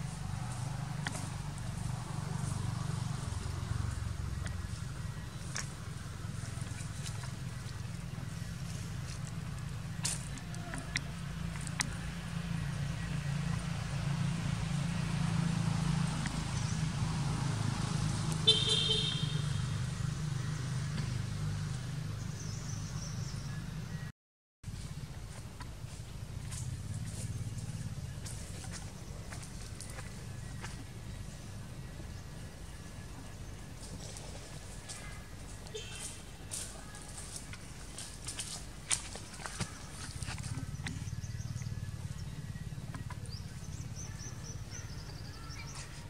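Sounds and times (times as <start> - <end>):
low engine hum: 0.0 - 24.1, 24.7 - 46.0
low outdoor rumble: 0.0 - 24.1, 24.7 - 46.0
horn toot: 18.4 - 19.7.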